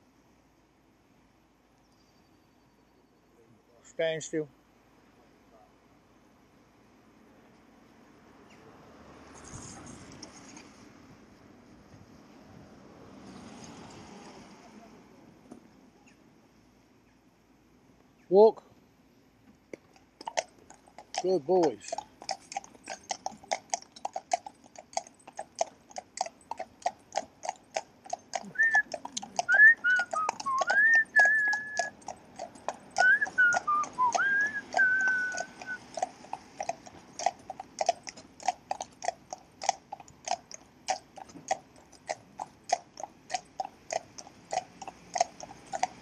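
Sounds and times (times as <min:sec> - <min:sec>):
horse hooves clip-clopping on tarmac: 0:19.5 - 0:46.0
sliding whistled notes: 0:28.6 - 0:28.9, 0:29.5 - 0:31.8, 0:33.0 - 0:35.8.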